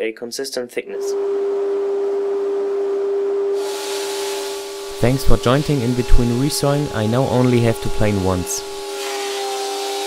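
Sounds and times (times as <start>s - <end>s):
jointer-planer whine: 1.2s - 10.0s
wood planing hiss: 3.6s - 10.0s.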